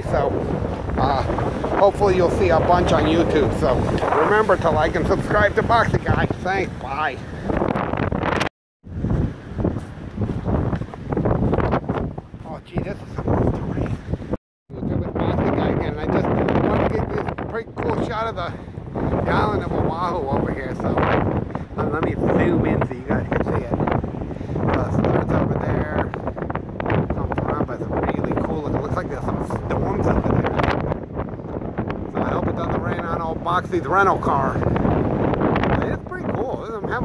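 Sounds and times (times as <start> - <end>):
rough ocean surf: 0.0 - 37.0
wind buffeting microphone: 0.0 - 37.0.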